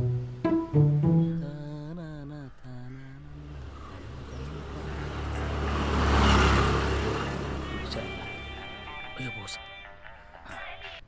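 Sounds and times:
road vehicle passing by: 3.2 - 10.4.

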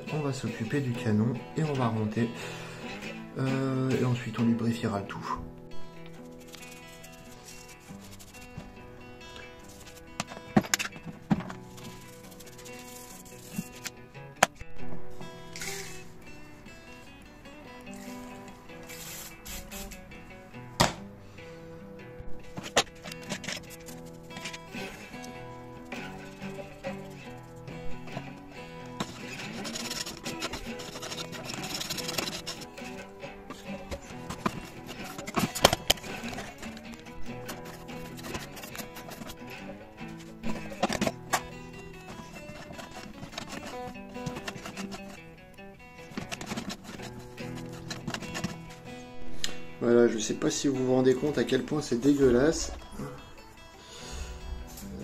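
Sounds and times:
guitar music: 0.0 - 55.0.

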